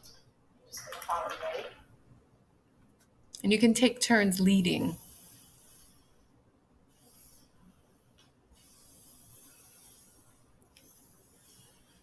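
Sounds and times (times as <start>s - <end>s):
muffled voice: 0.8s - 1.8s.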